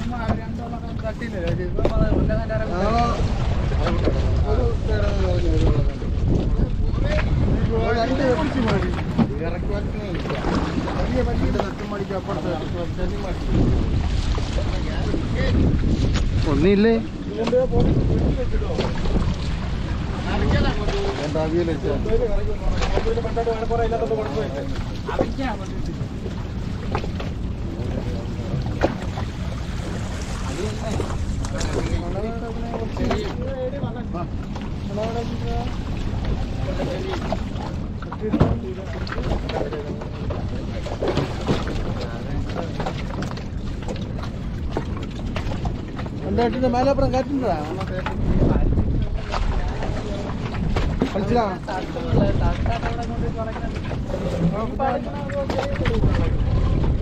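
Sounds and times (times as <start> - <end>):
men talking and calling: 0.0 - 57.0
wind buffeting microphone: 0.0 - 57.0.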